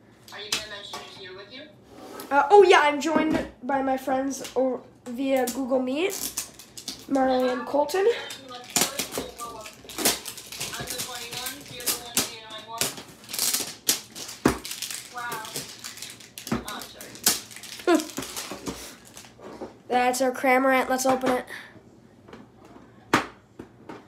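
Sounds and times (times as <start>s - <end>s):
voices talking: 7.1s - 13.0s.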